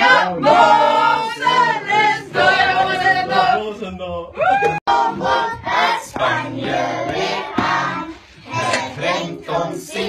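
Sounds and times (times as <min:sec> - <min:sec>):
children singing unaccompanied: 0:04.9 - 0:10.0.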